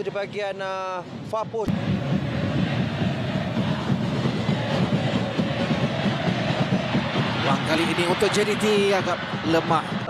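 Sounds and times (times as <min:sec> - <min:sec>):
stadium crowd din: 0:01.6 - 0:10.0.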